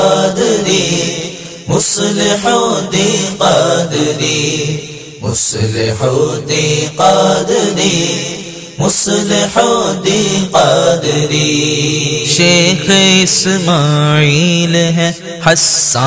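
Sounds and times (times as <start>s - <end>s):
voices singing devotional song: 0.0s - 16.0s.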